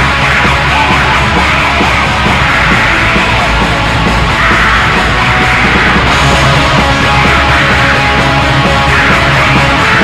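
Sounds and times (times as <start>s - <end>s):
distorted guitars and drums: 0.0s - 10.0s
harsh yelled vocals: 0.0s - 10.0s.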